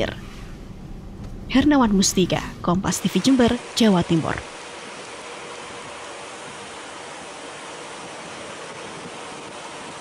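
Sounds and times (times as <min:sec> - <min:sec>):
road and wind noise: 0:00.0 - 0:10.0.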